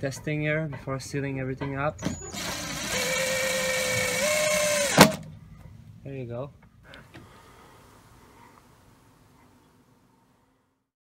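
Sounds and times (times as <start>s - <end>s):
cordless drill whining: 2.0s - 5.2s
drill click: 2.0s - 5.3s.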